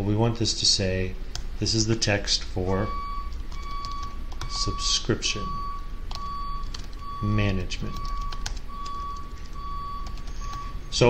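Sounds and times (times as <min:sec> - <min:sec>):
computer keyboard typing clicks: 0:03.3 - 0:04.5, 0:06.1 - 0:10.7.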